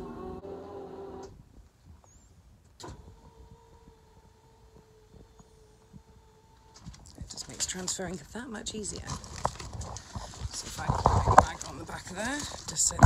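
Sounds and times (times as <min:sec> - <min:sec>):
faint electric motor hum: 0:02.8 - 0:07.4.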